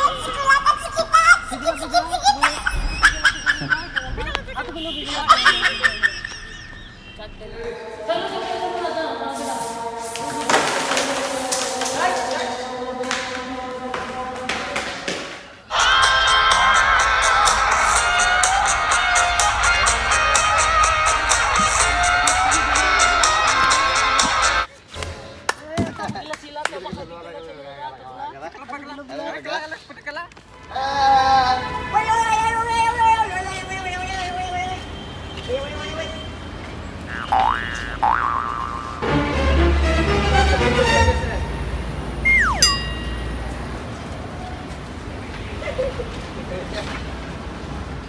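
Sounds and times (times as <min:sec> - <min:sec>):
swooping pitch glides: 0:42.2 - 0:43.5
held tone: 0:42.2 - 0:43.6.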